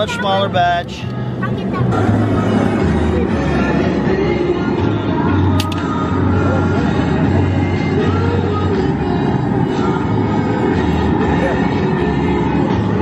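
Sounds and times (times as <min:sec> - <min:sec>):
music with low bass line: 0:00.0 - 0:13.0
propane burner rushing: 0:01.8 - 0:13.0.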